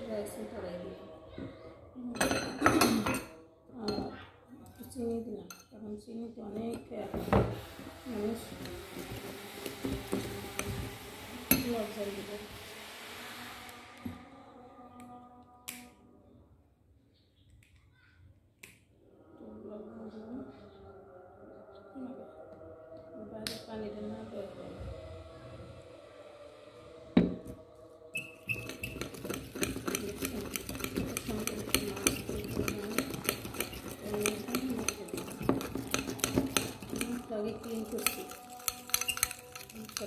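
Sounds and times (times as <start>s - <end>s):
spoon stirring in ceramic bowl: 2.2s - 5.8s, 6.5s - 12.0s, 28.2s - 40.0s.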